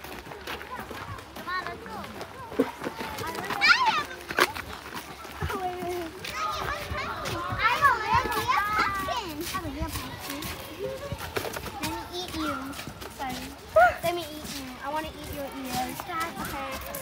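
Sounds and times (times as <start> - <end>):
children chattering and calling: 0.0 - 17.0
footsteps on wooden boardwalk: 0.0 - 17.0.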